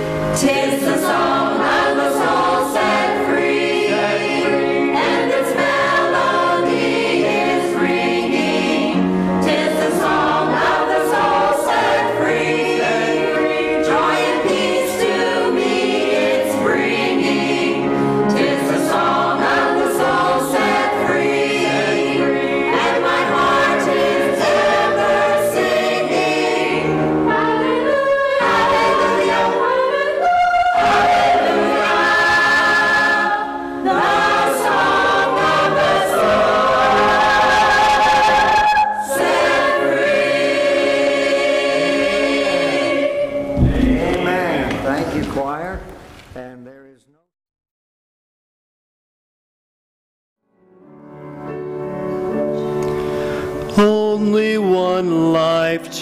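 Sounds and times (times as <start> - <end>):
choir singing a hymn: 0.0 - 45.0, 51.4 - 56.0.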